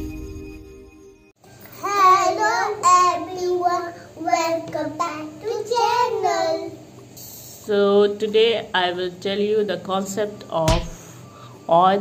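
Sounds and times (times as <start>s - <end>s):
girl singing: 1.7s - 6.7s.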